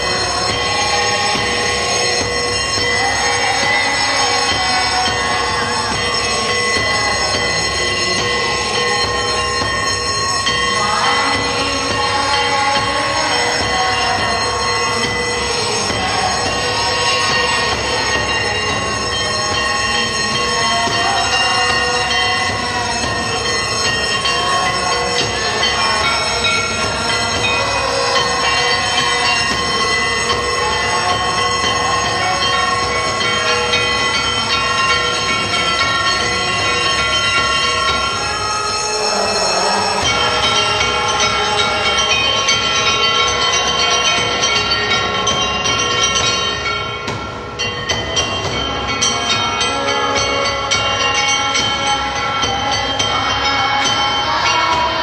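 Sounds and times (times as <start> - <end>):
temple bells and gongs ringing: 0.0 - 55.0.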